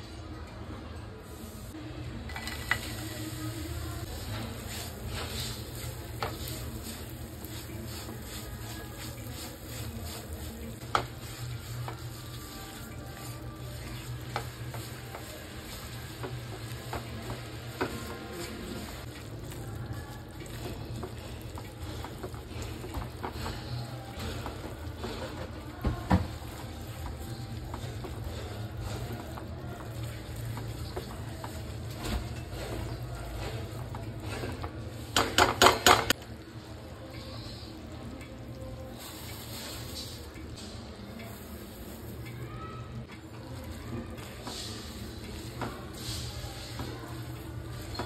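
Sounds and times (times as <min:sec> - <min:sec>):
syrup sizzling in frying pan: 0:02.4 - 0:36.1.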